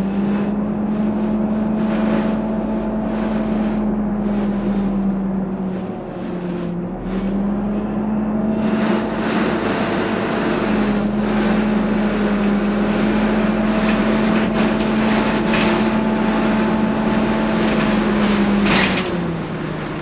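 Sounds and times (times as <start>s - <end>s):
bus engine and road noise: 0.0s - 20.0s.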